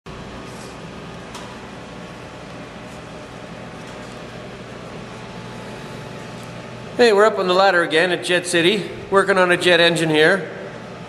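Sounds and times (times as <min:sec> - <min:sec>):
machine hum with hiss: 0:00.1 - 0:11.0.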